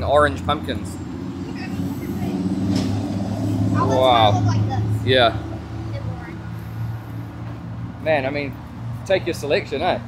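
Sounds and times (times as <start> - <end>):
vehicle engine running: 0.0 - 8.7.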